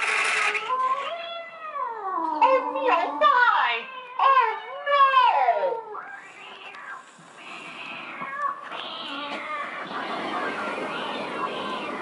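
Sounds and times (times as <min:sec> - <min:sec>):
soft hissing noises: 0:06.0 - 0:09.7.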